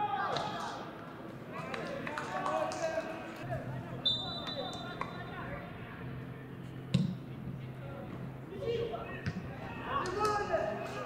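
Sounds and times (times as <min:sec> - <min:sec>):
referee's whistle blast: 0:04.0 - 0:05.0
players shouting: 0:08.5 - 0:11.0.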